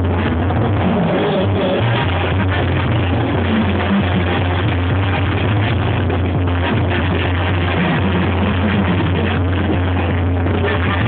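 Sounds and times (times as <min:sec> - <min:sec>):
deep bass note: 0:00.0 - 0:11.0
live music through sound system: 0:00.0 - 0:11.0.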